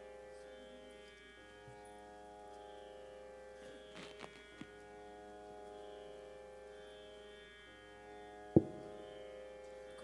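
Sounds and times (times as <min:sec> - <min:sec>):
harmonium drone chord: 0:00.0 - 0:10.0.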